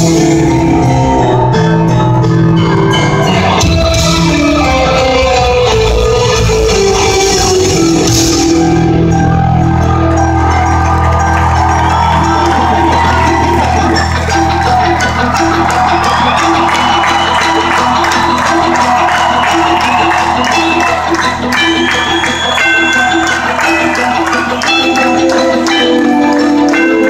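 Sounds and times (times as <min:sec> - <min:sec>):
loud live amplified music: 0:00.0 - 0:27.0.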